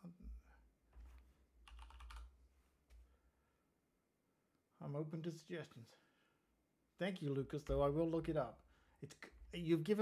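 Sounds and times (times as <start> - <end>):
faint keyboard typing: 1.0 - 2.4.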